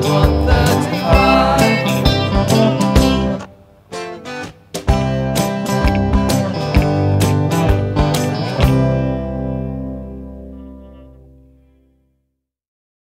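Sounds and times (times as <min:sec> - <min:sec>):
strummed guitar chords: 0:00.0 - 0:12.1.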